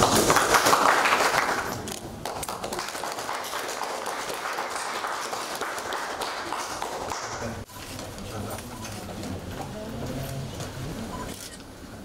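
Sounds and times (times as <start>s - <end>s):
scattered clapping: 0.0s - 7.6s
audience applause: 0.0s - 7.7s.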